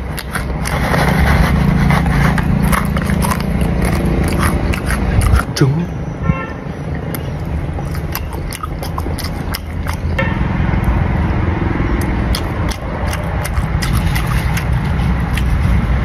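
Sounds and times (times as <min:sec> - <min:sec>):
crunchy chewing of snack: 0:00.0 - 0:05.8, 0:07.0 - 0:10.2, 0:11.9 - 0:16.0
vehicle engine rumble: 0:00.0 - 0:16.0.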